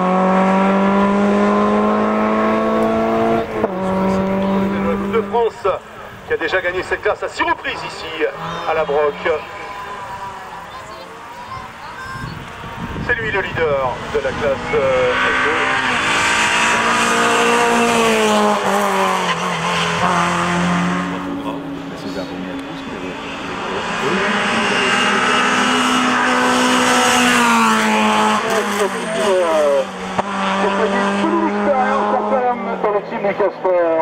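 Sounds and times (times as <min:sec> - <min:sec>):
car engine revving: 0:00.0 - 0:34.0.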